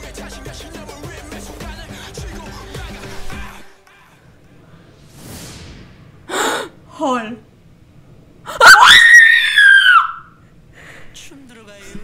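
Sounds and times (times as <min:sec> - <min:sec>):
woman screaming: 0:08.5 - 0:10.4.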